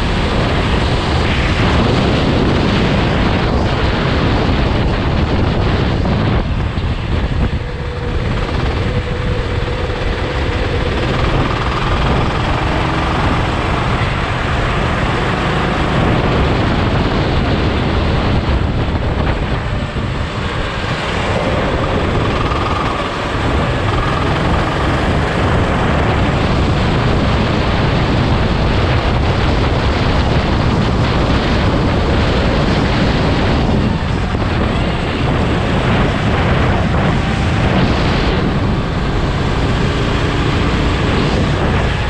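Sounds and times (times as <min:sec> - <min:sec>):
go-kart engine: 0:00.0 - 0:42.0
wind and road rush: 0:00.0 - 0:42.0.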